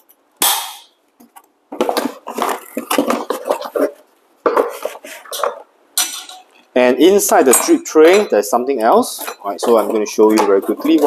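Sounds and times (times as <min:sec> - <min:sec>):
metal filter basket clinking: 0:05.3 - 0:11.0.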